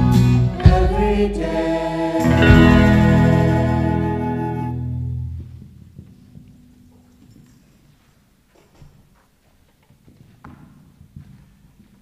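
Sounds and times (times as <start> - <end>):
people shuffling and knocking: 5.1 - 12.0.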